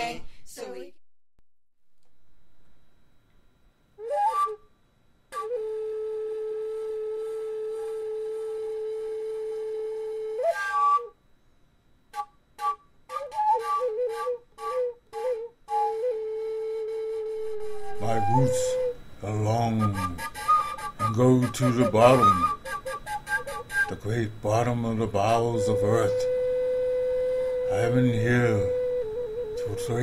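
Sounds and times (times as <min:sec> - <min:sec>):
flute melody: 0:04.0 - 0:04.6, 0:05.3 - 0:11.2, 0:12.1 - 0:30.0.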